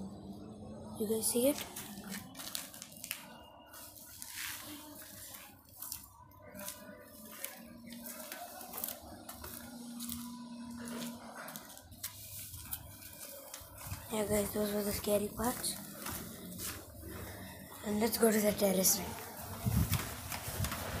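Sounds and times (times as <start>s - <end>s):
phone rustling and scraping: 1.6s - 10.2s.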